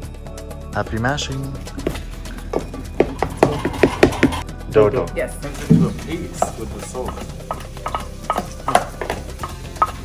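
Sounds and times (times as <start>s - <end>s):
wooden spoon pounding in metal pot: 1.8s - 4.4s, 5.6s - 10.0s.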